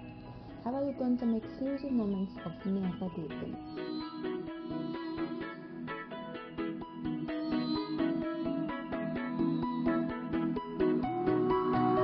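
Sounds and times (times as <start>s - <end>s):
plucked guitar-like music: 1.1s - 12.0s.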